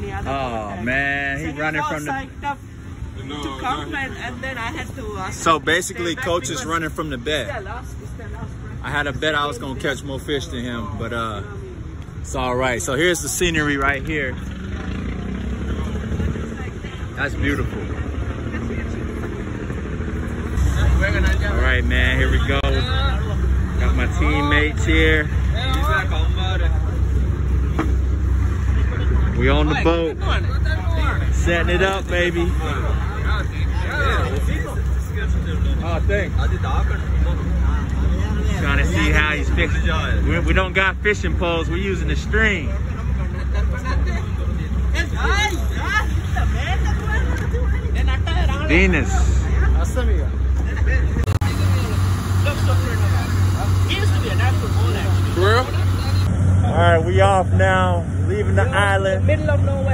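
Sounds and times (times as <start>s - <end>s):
people talking: 20.6s - 59.9s
boat engine idling: 30.2s - 56.3s.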